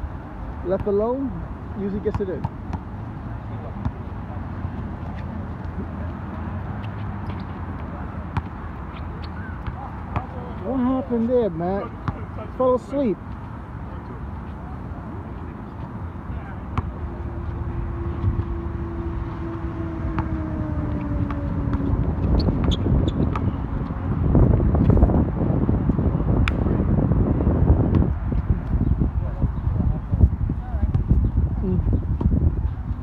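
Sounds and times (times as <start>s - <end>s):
players' voices: 0.6s - 2.6s, 3.2s - 22.3s
basketball bouncing on court: 9.5s - 10.4s, 12.0s - 12.3s, 21.2s - 23.6s
steady hum falling in pitch: 16.9s - 26.3s.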